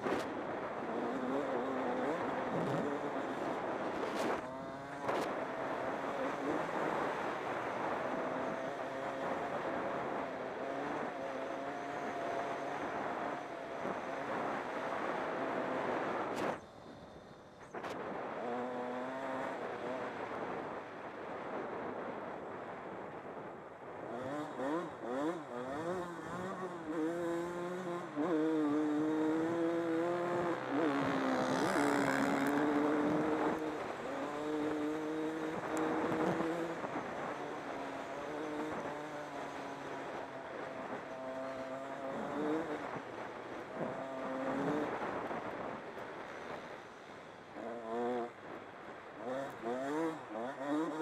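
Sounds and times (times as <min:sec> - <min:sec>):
wind rushing over microphone: 0:00.0 - 0:46.8
dirt bike engine revving: 0:00.8 - 0:16.3, 0:18.4 - 0:20.3, 0:24.1 - 0:45.6, 0:49.2 - 0:51.0.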